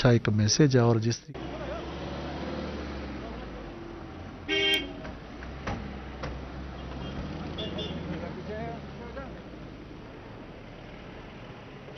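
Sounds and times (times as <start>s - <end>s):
car engines rumbling: 1.3s - 11.9s
car horn honk: 4.5s - 5.0s, 6.8s - 8.0s.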